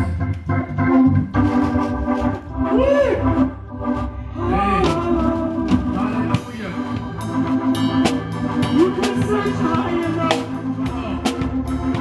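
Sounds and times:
organ chords: 0.0 - 12.0
drum hits: 4.8 - 12.0.

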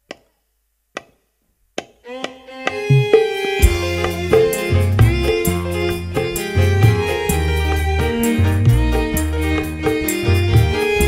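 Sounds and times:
band music: 2.1 - 11.0.

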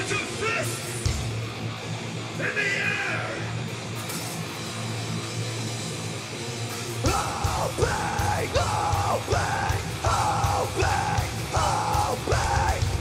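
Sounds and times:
distorted electric guitars: 0.0 - 13.0
drums: 0.0 - 13.0
shouted vocal phrases: 7.1 - 13.0.

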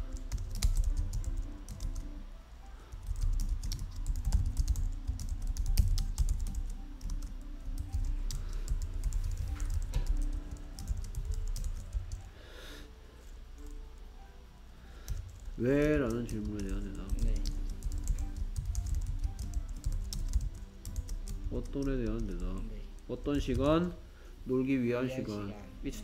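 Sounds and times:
keyboard typing: 0.0 - 2.1, 2.8 - 12.3, 15.0 - 23.8.

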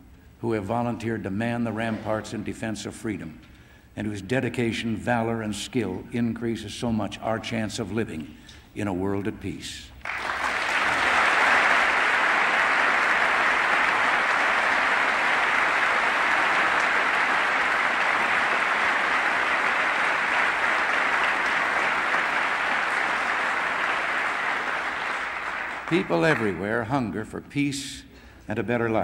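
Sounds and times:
large audience applauding: 10.0 - 26.7.

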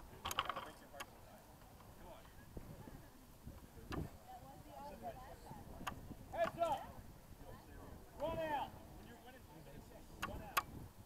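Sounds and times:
faint open-air background: 0.0 - 11.0.

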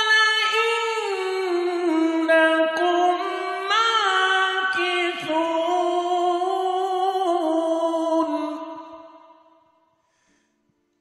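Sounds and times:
person chanting recitation: 0.0 - 9.0.

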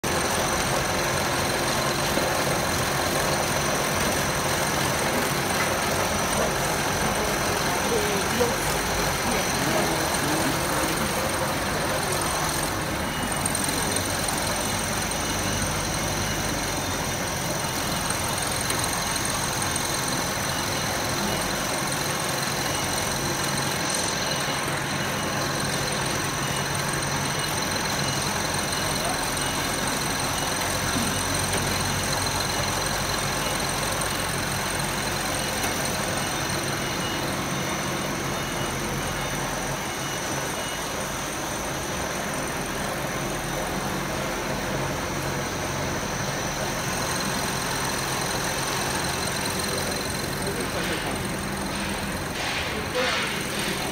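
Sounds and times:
machinery noise: 0.0 - 53.9.

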